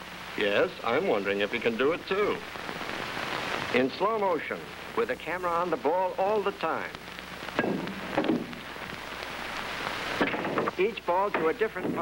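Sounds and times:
film soundtrack hiss and crackle: 0.0s - 12.0s.

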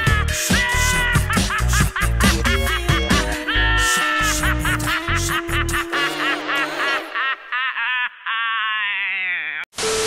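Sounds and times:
song bass and drums: 0.0s - 3.5s
man cackling maniacally: 0.0s - 9.7s.

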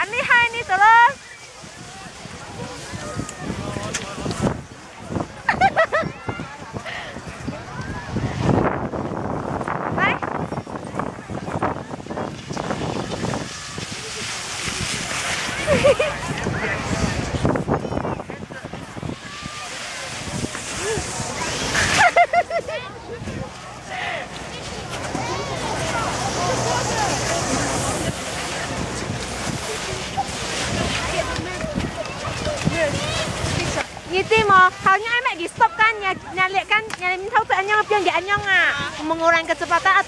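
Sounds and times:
crowd voices talking and calling out: 0.0s - 40.0s
steady rushing noise: 0.0s - 40.0s
wind buffeting microphone: 0.0s - 40.0s.

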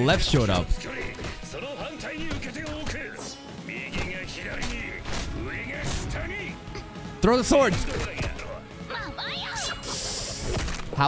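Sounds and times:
background music: 0.0s - 11.0s
character voice: 7.9s - 9.9s.

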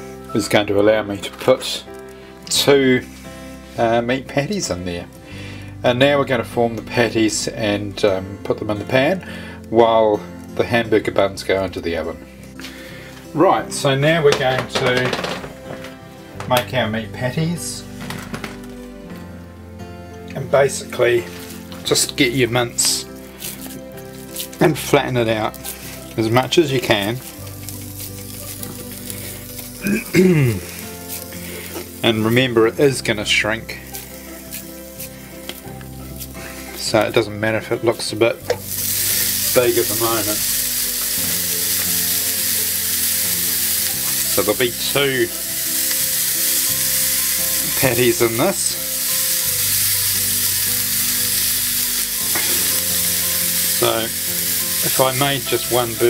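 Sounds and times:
background music with low notes: 0.0s - 56.0s
meat sizzling in a frying pan: 20.7s - 56.0s.

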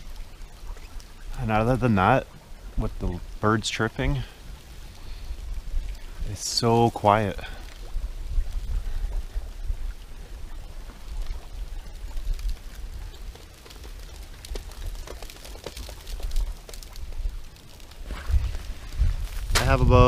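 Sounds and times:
water trickling under ice: 0.0s - 20.0s
crinkly ice clicks: 10.5s - 19.8s
steady low rumble: 16.2s - 20.0s.

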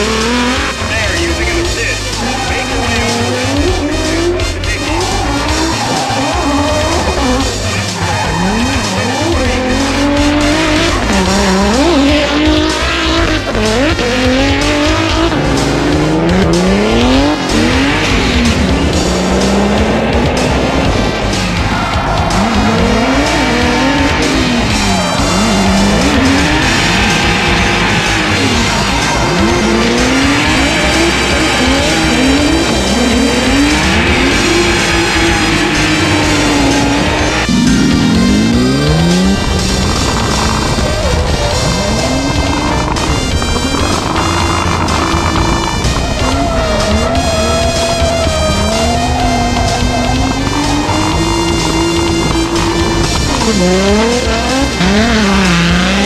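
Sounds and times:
background music with bass: 0.0s - 56.0s
car engines revving: 0.0s - 56.0s
tyres squealing: 0.0s - 56.0s.

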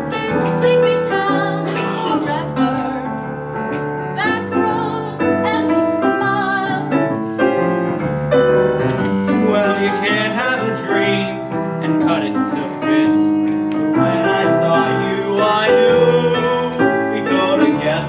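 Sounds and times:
piano chords: 0.0s - 18.0s
duet singing with vibrato: 13.9s - 18.0s.

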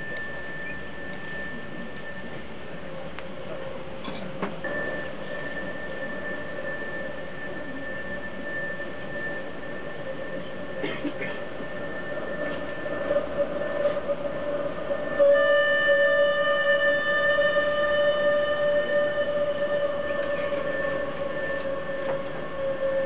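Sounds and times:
high whistling tone: 0.0s - 3.6s, 4.6s - 10.8s, 11.5s - 23.0s
hurdy-gurdy drone: 0.0s - 23.0s.

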